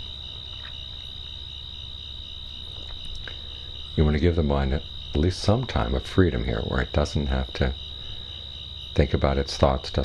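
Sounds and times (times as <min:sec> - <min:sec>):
crickets trilling: 0:00.0 - 0:10.0
faint low hum: 0:00.0 - 0:10.0.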